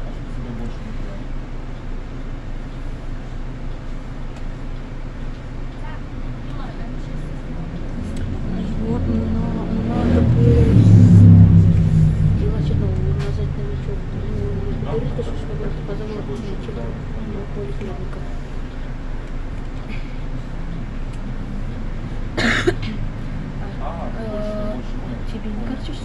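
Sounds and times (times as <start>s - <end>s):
bus engine idling: 0.0s - 26.0s.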